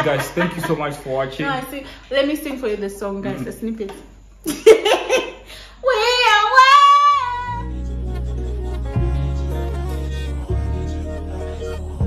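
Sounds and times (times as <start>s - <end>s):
woman laughing: 4.4s - 5.4s.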